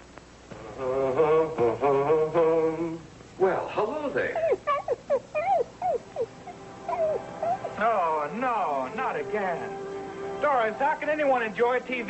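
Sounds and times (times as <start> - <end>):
dog whimpering: 4.4 - 8.0.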